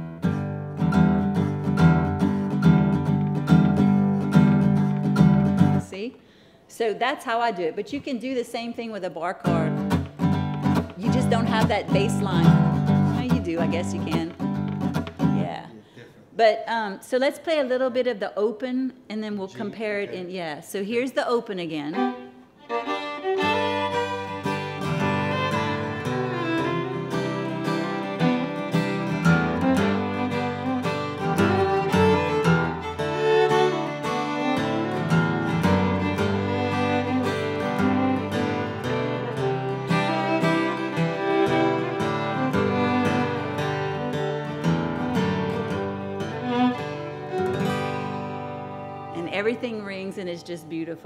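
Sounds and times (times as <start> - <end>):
acoustic guitar open chords: 0.0 - 5.9, 9.5 - 16.2, 23.7 - 49.7
fiddle: 9.5 - 15.2, 21.8 - 50.3.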